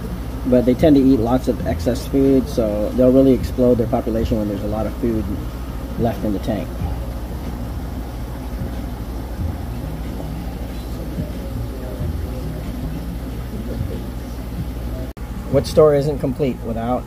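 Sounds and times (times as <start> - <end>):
faint voices: 0.0 - 15.6
aquarium equipment droning: 0.0 - 17.0.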